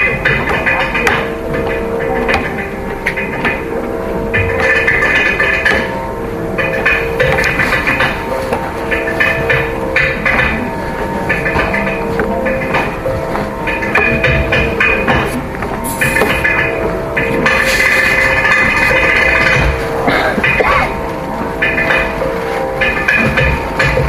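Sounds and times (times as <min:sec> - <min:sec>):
electric mandolins playing melody: 0:00.0 - 0:24.0
rhythmic percussion: 0:00.0 - 0:24.0
steady drone: 0:00.0 - 0:24.0.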